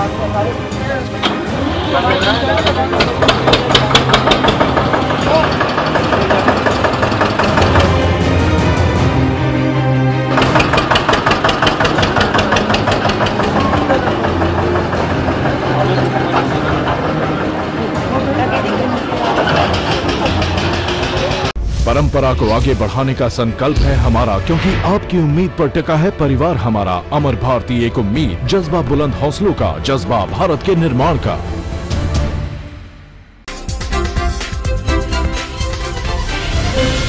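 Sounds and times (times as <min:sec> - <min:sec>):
people's voices: 0:00.0 - 0:06.6, 0:13.4 - 0:25.6
diesel tractor engine idling: 0:10.4 - 0:21.5.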